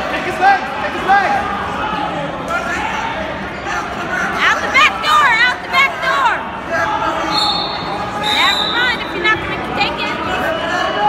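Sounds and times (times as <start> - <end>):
voices shouting in echoing gym: 0.0 - 11.0.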